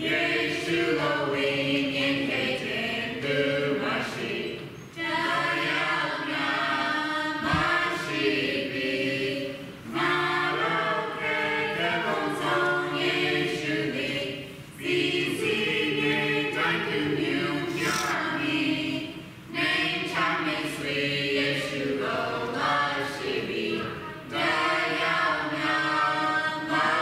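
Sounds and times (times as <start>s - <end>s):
group singing a hymn unaccompanied: 0.0s - 27.0s.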